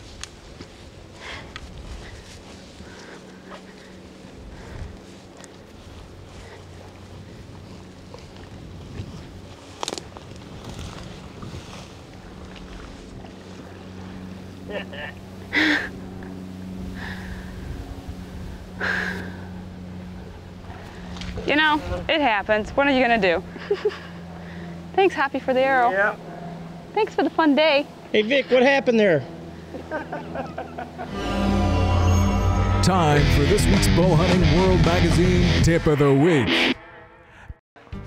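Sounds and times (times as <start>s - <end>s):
low motor hum: 0.0s - 35.7s
short laugh: 14.7s - 16.0s.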